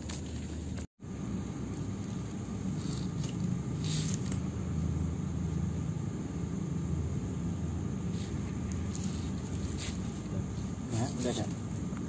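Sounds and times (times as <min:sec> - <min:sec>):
steady low rumble: 0:00.3 - 0:12.0.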